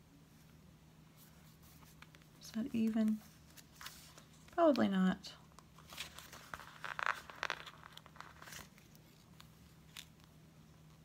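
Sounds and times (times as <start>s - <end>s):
paper crinkling and rustling: 1.2s - 10.4s.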